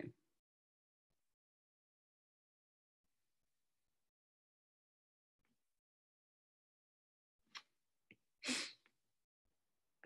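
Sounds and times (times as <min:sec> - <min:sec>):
sharp burst of breath: 0:08.4 - 0:08.8.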